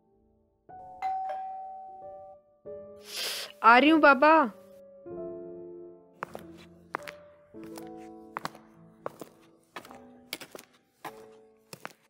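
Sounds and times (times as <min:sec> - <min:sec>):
doorbell ding-dong chime: 0:01.0 - 0:02.4.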